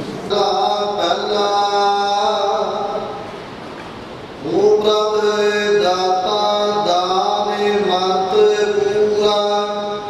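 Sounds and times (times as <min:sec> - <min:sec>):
man chanting a held note: 0:04.4 - 0:10.0.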